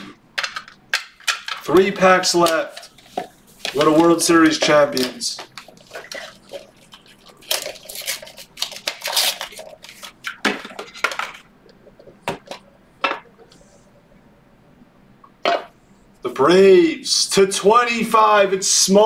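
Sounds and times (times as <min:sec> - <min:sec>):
plastic rustling: 0:00.4 - 0:13.8.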